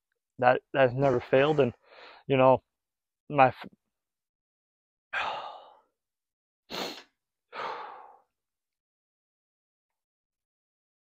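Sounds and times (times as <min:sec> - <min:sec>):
man breathing heavily: 0:01.1 - 0:02.3, 0:05.2 - 0:05.9, 0:06.7 - 0:08.3.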